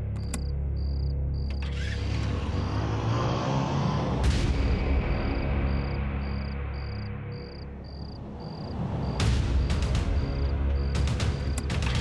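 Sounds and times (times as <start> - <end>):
low droning music: 0.0 - 12.0
cricket chirping: 0.2 - 2.0, 5.1 - 11.8.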